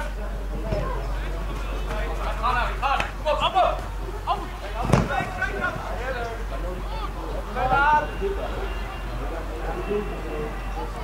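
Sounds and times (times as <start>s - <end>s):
players shouting: 0.0s - 11.0s
football being kicked: 4.8s - 5.6s.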